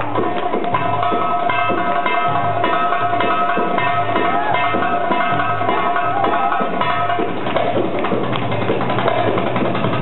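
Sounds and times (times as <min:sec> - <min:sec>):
hand drum strokes: 0:00.0 - 0:10.0
live band music: 0:00.0 - 0:10.0.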